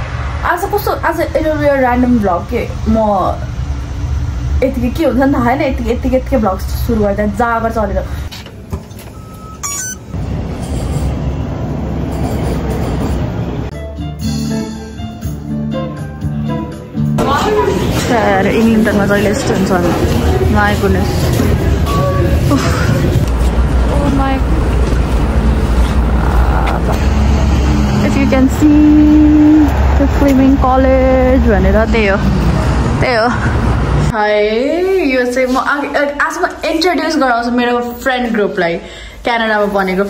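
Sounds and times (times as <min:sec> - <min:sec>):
road traffic rumble: 0:00.0 - 0:13.8, 0:16.1 - 0:34.5
subway train running: 0:00.0 - 0:37.8
short electronic beep: 0:09.1 - 0:10.2.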